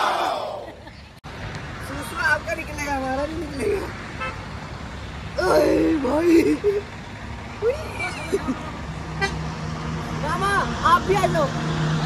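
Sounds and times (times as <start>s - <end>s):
person laughing: 6.2s - 6.9s.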